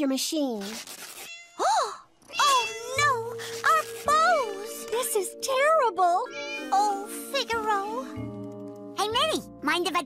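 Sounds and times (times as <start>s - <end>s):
cartoon kitten meowing: 1.3s - 4.5s
background music: 2.5s - 10.0s.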